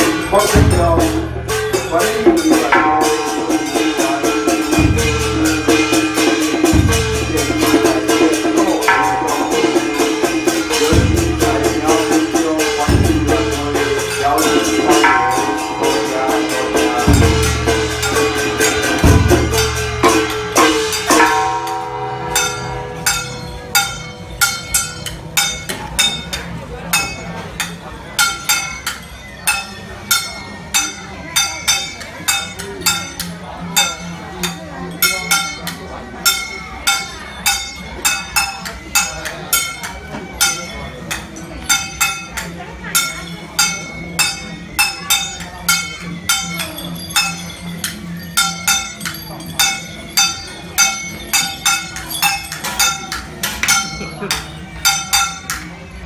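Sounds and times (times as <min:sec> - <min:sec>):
metal percussion clinks: 0:00.0 - 0:56.0.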